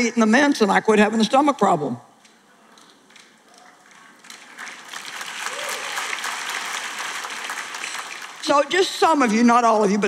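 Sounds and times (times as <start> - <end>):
audience applauding: 3.6 - 8.8.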